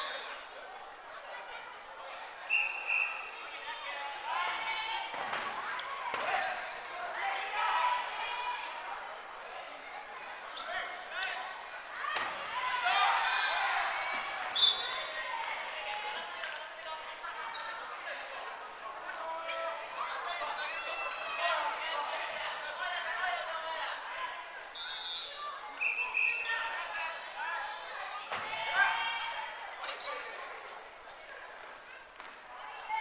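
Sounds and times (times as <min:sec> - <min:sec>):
players shouting: 0:11.9 - 0:16.6.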